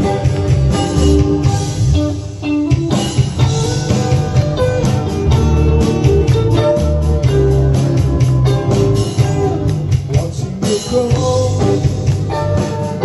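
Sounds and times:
live band playing instrumental: 0.0 - 13.0.

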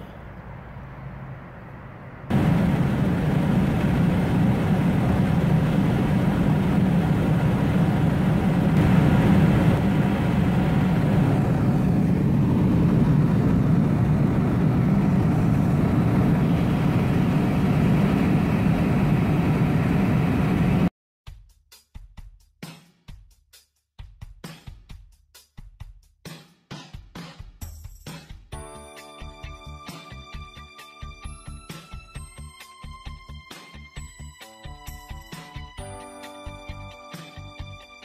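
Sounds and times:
airplane cabin engine noise: 0.0 - 20.9.

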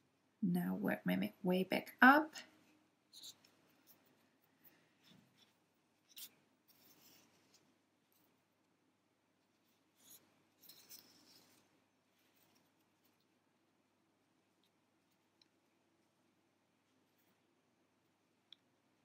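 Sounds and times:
yarn scratching through fabric: 9.5 - 13.4.

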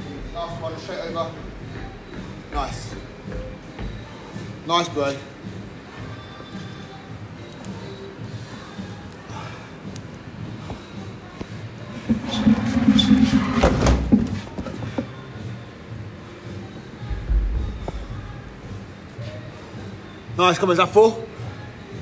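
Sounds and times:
background music: 0.0 - 22.0.

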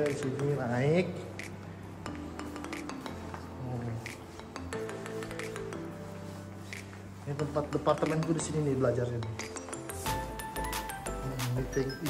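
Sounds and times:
background music with low notes: 0.0 - 12.0
light clicking beat: 0.0 - 12.0.

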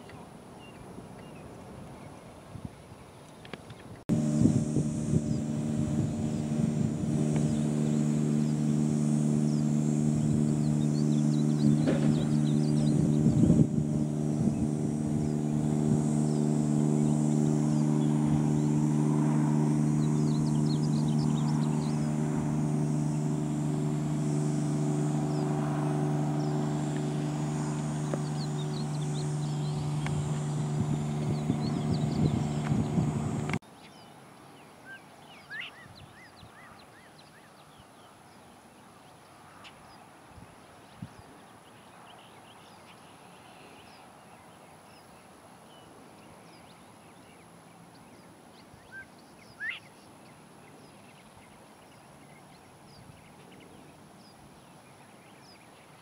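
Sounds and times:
motor drone: 4.1 - 33.6.

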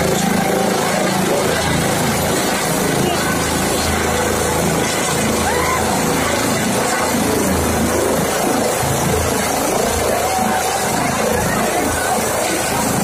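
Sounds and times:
crowd shouting: 0.0 - 13.0
helicopter hovering: 0.0 - 13.0.

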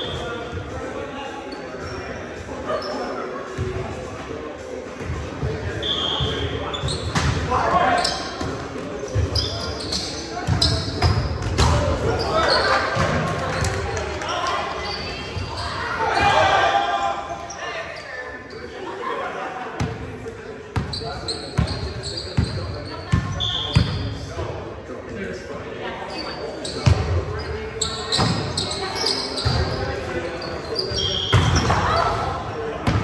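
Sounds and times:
players shouting: 14.2 - 18.0.

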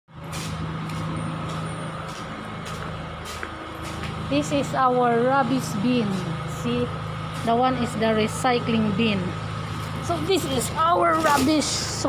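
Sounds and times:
low mechanical hum: 0.1 - 12.0
scuffing footsteps: 0.3 - 4.2.

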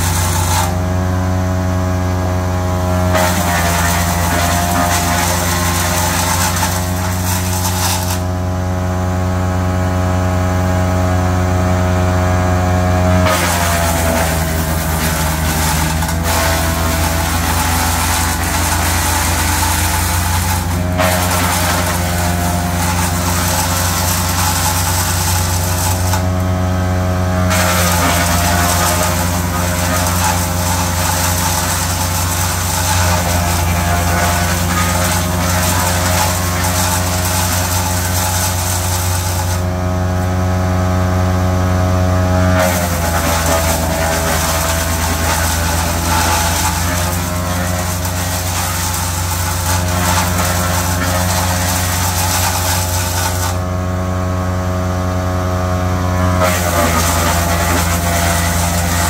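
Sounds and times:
wood chipper crunching and shredding: 0.0 - 59.0.

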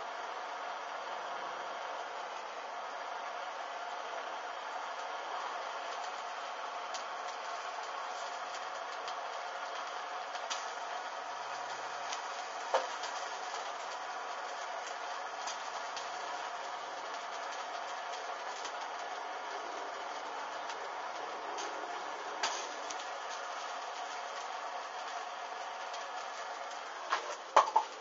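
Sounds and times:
burning fabric crackling: 0.0 - 28.0
blowtorch hissing: 0.3 - 28.0.

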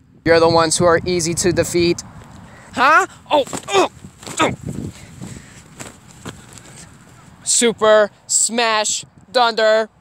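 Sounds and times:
handling rustles: 3.3 - 7.4.

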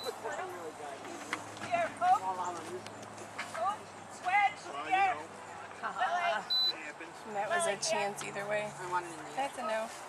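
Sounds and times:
high-pitched beep: 6.5 - 6.8.

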